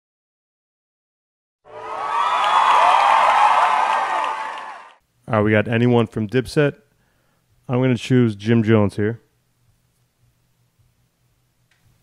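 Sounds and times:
recorded crowd cheering and whooping: 0:01.7 - 0:05.0.

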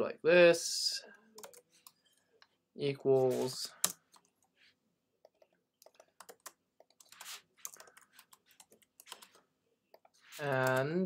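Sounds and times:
computer keyboard typing: 0:01.4 - 0:02.0, 0:03.7 - 0:04.4, 0:05.3 - 0:09.4, 0:10.0 - 0:11.0.

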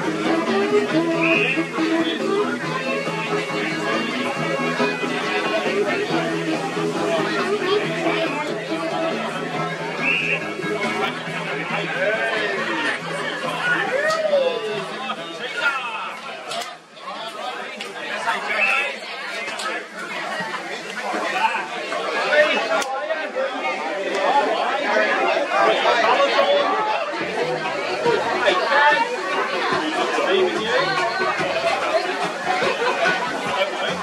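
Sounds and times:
spectators chattering: 0:00.0 - 0:34.0.

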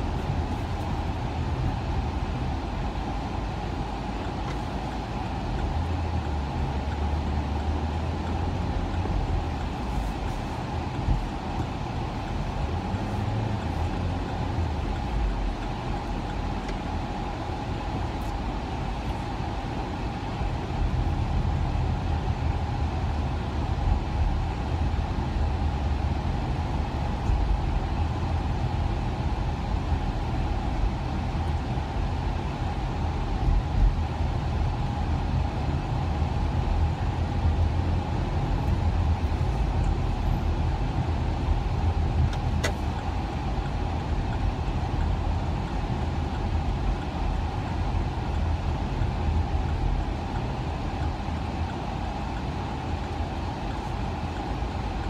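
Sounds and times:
engine and tyre rumble: 0:00.0 - 0:55.0.

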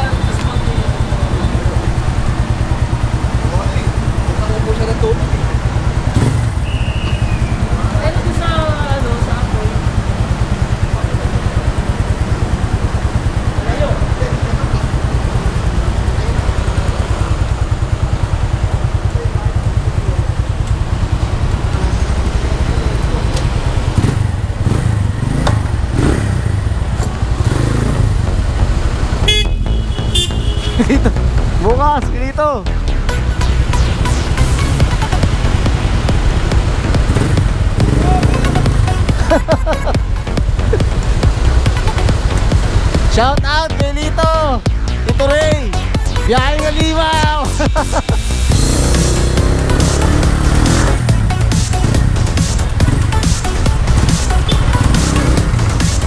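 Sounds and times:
motorcycle engine throbbing: 0:00.0 - 0:56.0.

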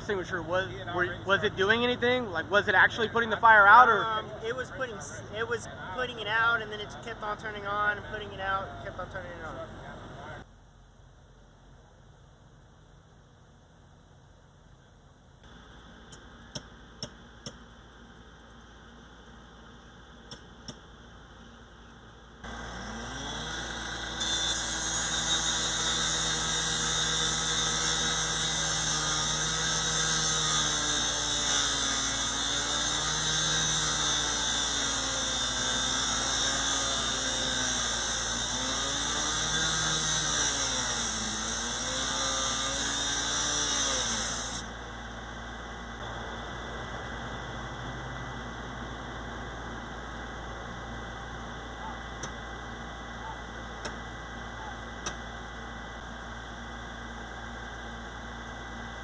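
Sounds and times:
power saw cutting metal: 0:22.4 - 0:44.7.

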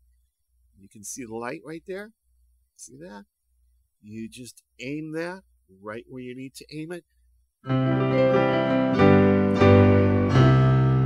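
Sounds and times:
digital piano chords: 0:07.6 - 0:11.0.

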